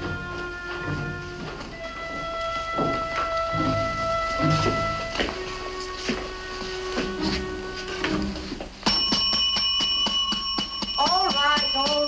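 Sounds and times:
call bell struck rapidly: 0:08.9 - 0:12.0.

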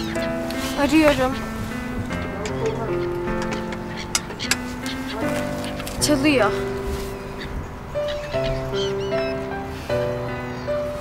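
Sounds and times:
soft sustained chords music: 0:00.0 - 0:11.0.

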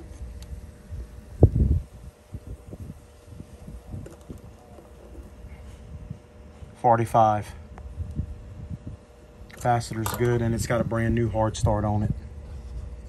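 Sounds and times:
wind on microphone: 0:00.0 - 0:06.4, 0:07.8 - 0:13.0.

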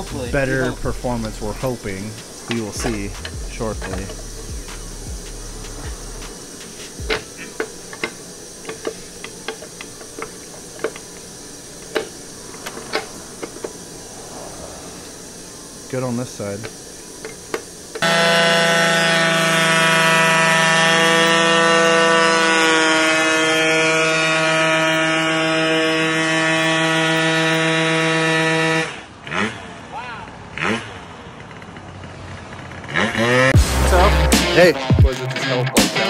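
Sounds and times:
music with deep bass beat: 0:00.0 - 0:10.1, 0:33.6 - 0:36.0
scooter engine at high revs: 0:16.4 - 0:33.6.

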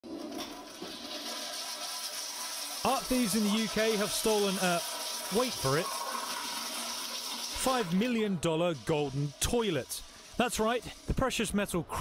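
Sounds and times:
toilet flushing: 0:00.0 - 0:12.0.

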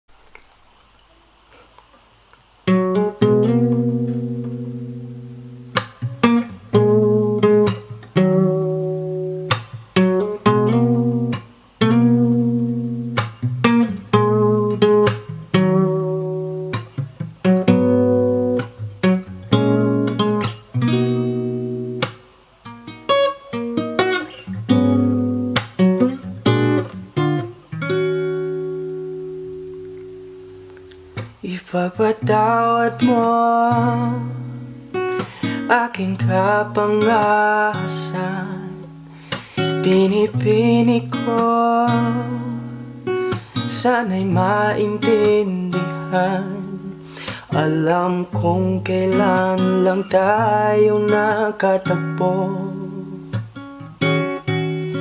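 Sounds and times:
acoustic guitar strumming: 0:02.6 - 0:55.0.

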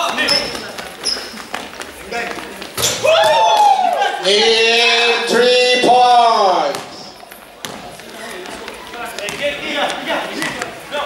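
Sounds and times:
basketball bounce on gym floor: 0:06.6 - 0:10.8.

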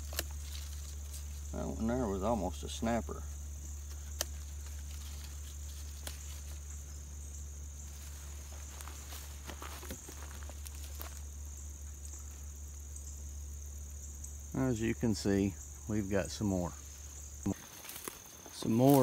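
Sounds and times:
dry plant stems rustling: 0:00.0 - 0:12.9, 0:16.3 - 0:19.0
insect chorus trilling: 0:00.0 - 0:19.0.

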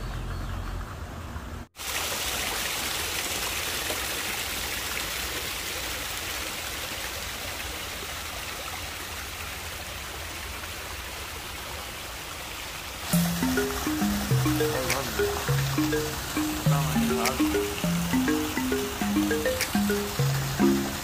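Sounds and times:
waterfall splashing into pool: 0:01.8 - 0:21.0.

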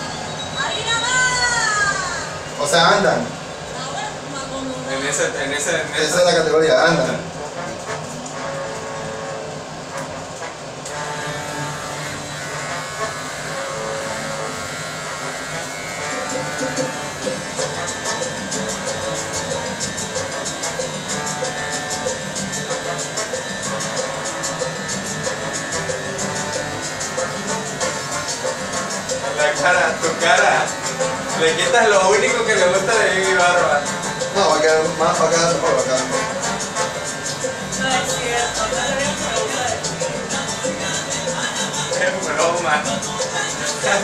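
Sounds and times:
background music: 0:05.0 - 0:44.0
electric hair clippers buzzing: 0:07.0 - 0:44.0.

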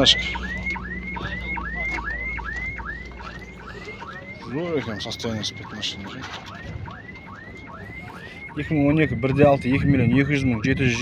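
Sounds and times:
car alarm whooping: 0:00.0 - 0:11.0.

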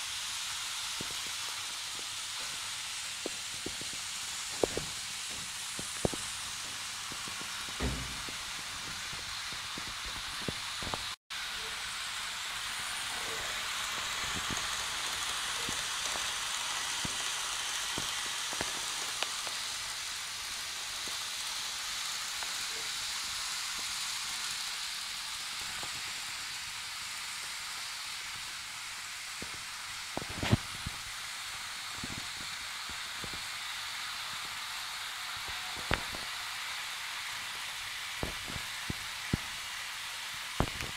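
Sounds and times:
model train rolling hiss: 0:00.0 - 0:40.9.

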